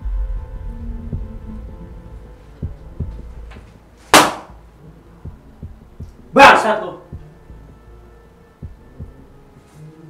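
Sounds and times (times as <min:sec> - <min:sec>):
heartbeat thumps: 0:00.0 - 0:06.4, 0:07.0 - 0:07.9, 0:08.6 - 0:09.5.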